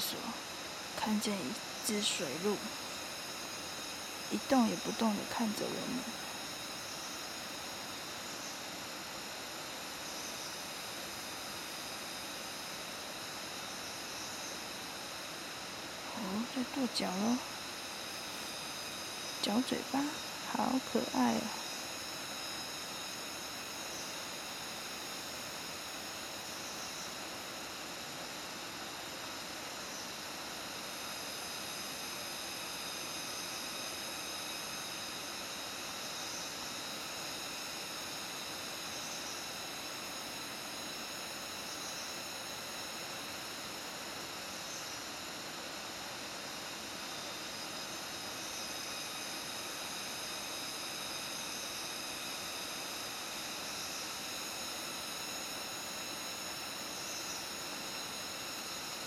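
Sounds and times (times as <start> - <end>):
forest hiss: 0.0 - 59.0
high steady whining tones: 0.0 - 59.0.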